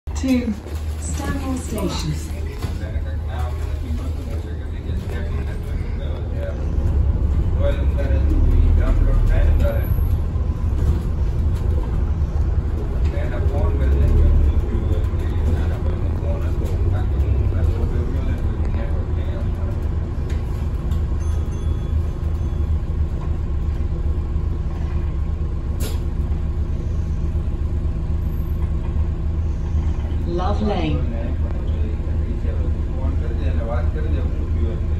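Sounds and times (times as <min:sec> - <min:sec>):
bus engine and road rumble: 0:00.0 - 0:34.9.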